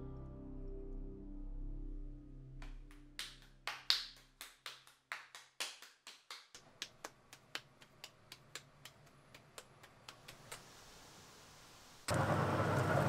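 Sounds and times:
soft music: 0.0 - 4.0
hands slapping wet clay: 2.7 - 10.7.

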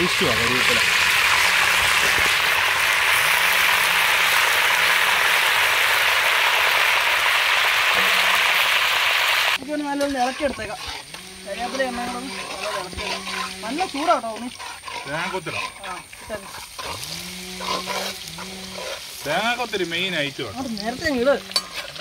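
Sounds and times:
leaves sizzling in hot oil: 0.0 - 22.0
voices: 9.6 - 16.6, 17.8 - 21.6.

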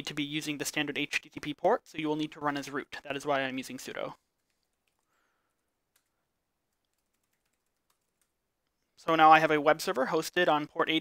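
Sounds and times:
keyboard typing clicks: 6.7 - 8.4.

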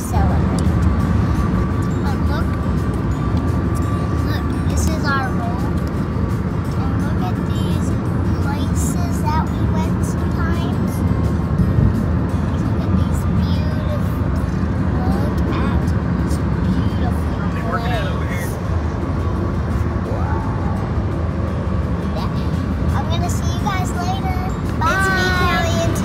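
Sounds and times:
car cabin road rumble: 0.0 - 26.0
faint music: 0.0 - 26.0.

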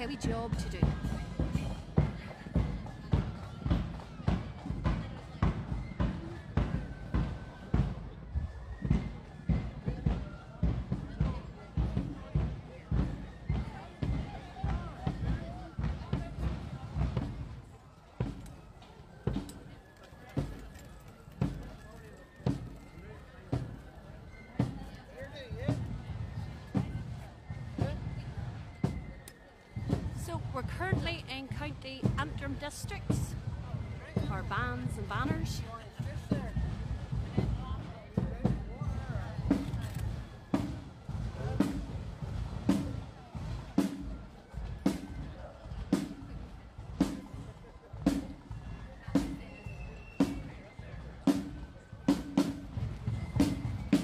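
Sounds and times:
bass drum beating a march: 0.0 - 19.7, 22.4 - 24.9, 25.6 - 29.1, 29.7 - 50.6, 51.2 - 54.0.

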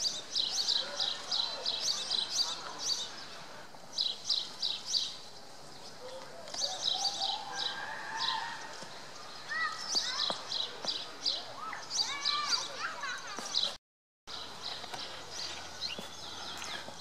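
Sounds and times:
small birds chirping: 0.0 - 17.0.

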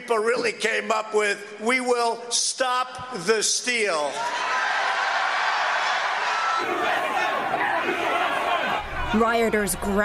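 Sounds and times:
large crowd cheering: 4.1 - 10.0
closer crowd yelling: 4.2 - 10.0.

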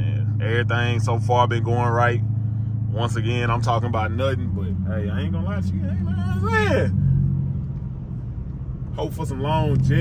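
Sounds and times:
car engine droning in cabin: 0.0 - 10.0.

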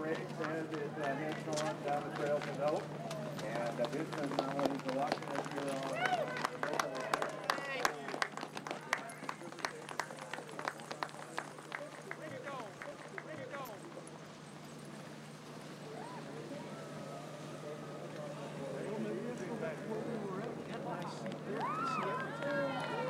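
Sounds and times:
people's voices: 0.0 - 23.0.

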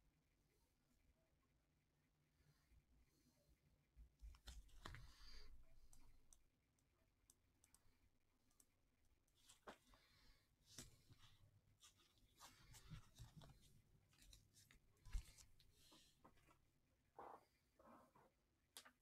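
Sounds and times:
soft rustles: 10.7 - 16.6.

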